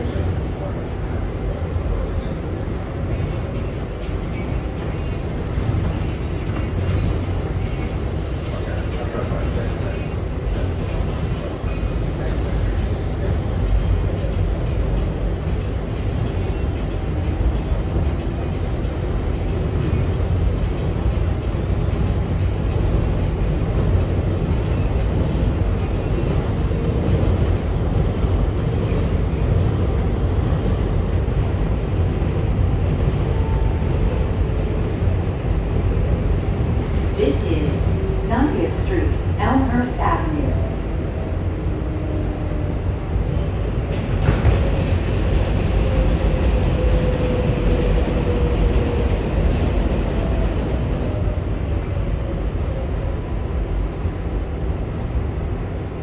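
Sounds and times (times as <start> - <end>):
subway wheels rumbling on rail: 0.0 - 56.0.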